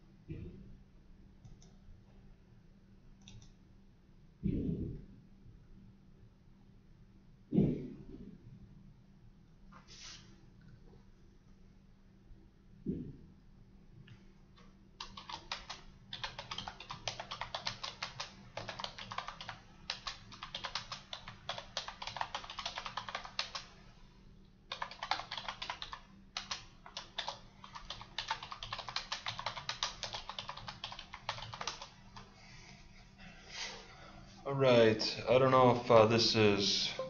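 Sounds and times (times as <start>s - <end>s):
typing on keyboard: 3.2s - 3.5s, 15.0s - 23.8s, 24.7s - 32.3s.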